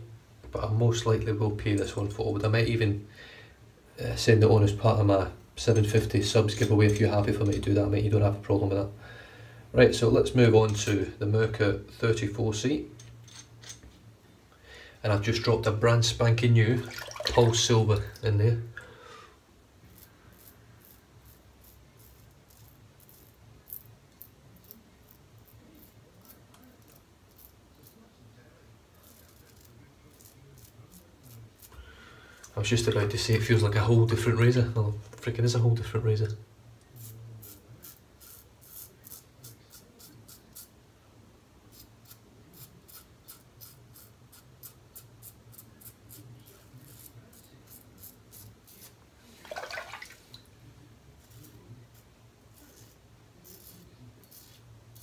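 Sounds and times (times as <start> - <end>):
razor scraping stubble: 19.9 - 28.1, 28.9 - 31.8, 37.0 - 40.7, 41.7 - 49.0, 51.2 - 55.0.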